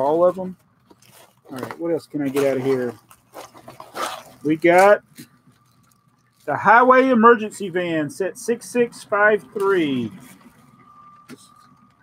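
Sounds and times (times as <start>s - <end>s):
plastic bag crinkling: 0.8s - 6.6s
faint steady high tone: 4.4s - 12.0s.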